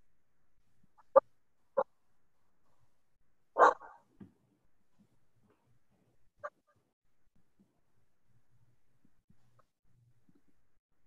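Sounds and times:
dog barking: 3.6 - 4.1.

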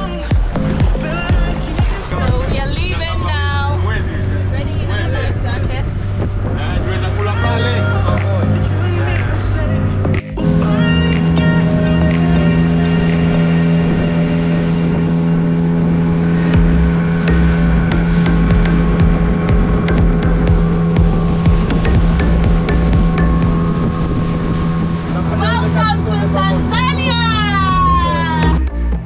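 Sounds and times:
water rushing and splashing: 0.0 - 28.7
boat motor running: 0.0 - 29.0.

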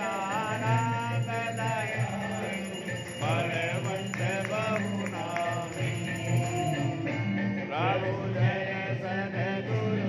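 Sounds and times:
chanted singing: 0.0 - 10.0.

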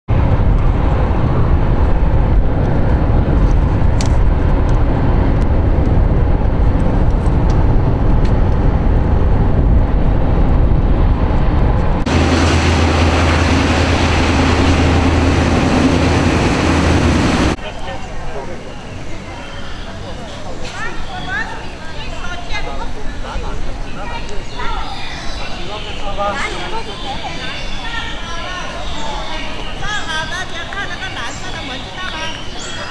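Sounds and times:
low hum: 0.1 - 17.6
road and engine noise: 0.1 - 20.9.

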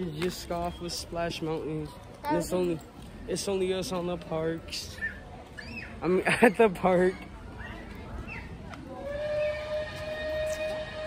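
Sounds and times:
steam locomotive whistle blast: 9.0 - 11.0.

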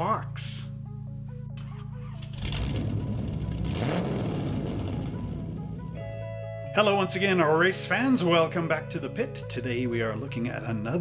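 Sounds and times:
background music: 0.0 - 11.0
car engine revving: 2.2 - 6.1.

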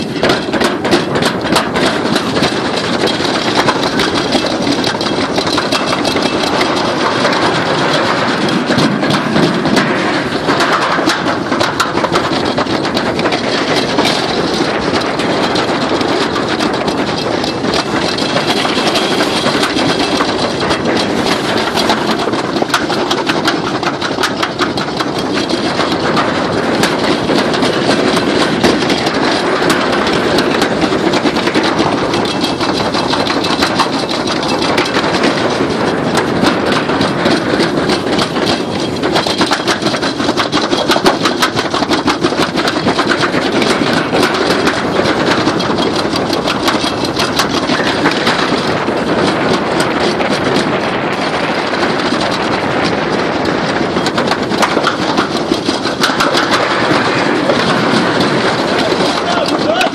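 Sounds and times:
sled rattling against metal: 0.0 - 59.9
sled rumbling down metal trough: 0.0 - 59.9.

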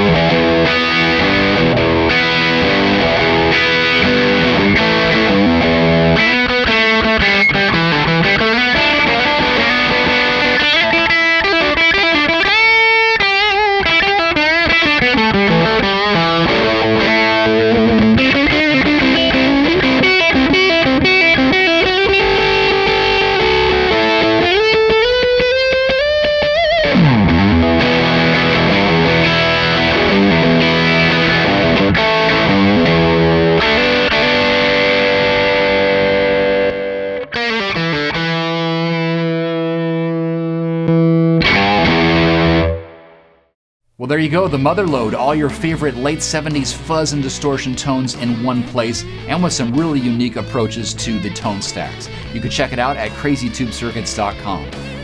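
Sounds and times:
fuzz electric guitar: 0.0 - 43.5, 44.3 - 55.0.

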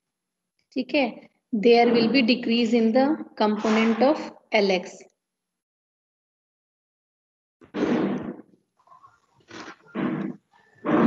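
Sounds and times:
woman speaking slowly: 1.6 - 5.1.

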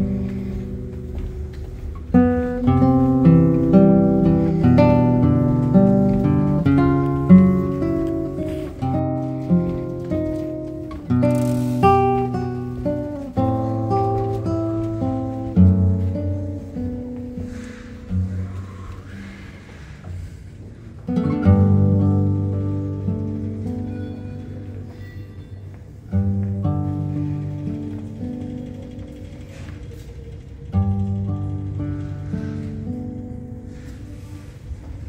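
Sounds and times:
solo acoustic guitar: 0.0 - 19.3, 21.0 - 29.2, 30.7 - 34.6.

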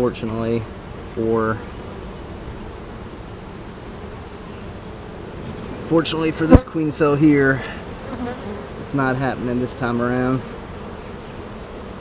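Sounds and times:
bees buzzing: 0.0 - 12.0.

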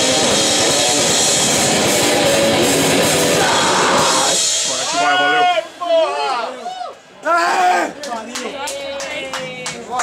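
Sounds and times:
drums and cymbals ringing: 0.0 - 6.4
voices shouting and whooping: 3.4 - 8.0.

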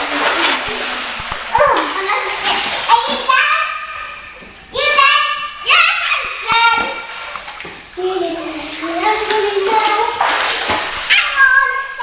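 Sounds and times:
pool water splashing: 0.0 - 12.0
children calling out and squealing: 1.5 - 2.5, 11.1 - 12.0.

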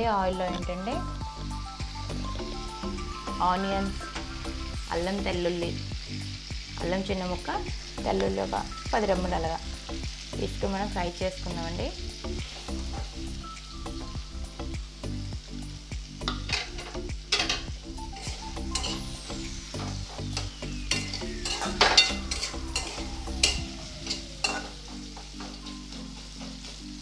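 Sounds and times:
onions sizzling in hot oil: 0.0 - 27.0
metal spatula scraping a pan: 16.3 - 27.0.

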